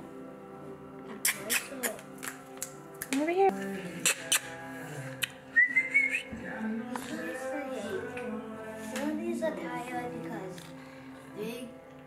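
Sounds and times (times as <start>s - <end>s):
background music: 0.0s - 12.0s
short rising whistle: 5.6s - 6.3s.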